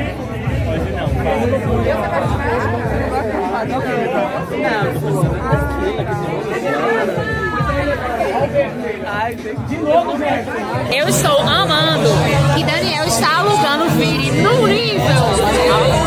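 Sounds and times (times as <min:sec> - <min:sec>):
music: 0:00.0 - 0:16.0
voices talking over one another: 0:00.0 - 0:16.0.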